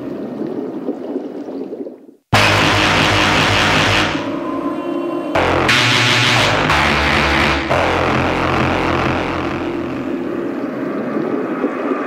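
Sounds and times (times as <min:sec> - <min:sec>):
deep bass: 0:02.4 - 0:04.8, 0:05.4 - 0:10.6
droning noise texture: 0:02.4 - 0:11.2.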